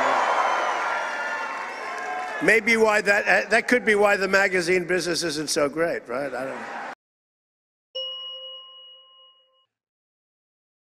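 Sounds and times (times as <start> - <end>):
bell-like chime: 8.0 - 9.8.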